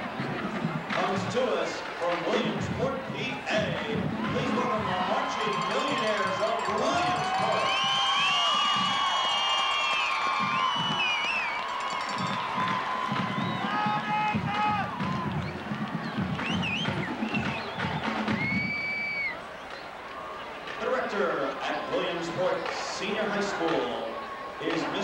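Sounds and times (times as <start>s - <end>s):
crowd cheering and whooping: 4.1s - 25.0s.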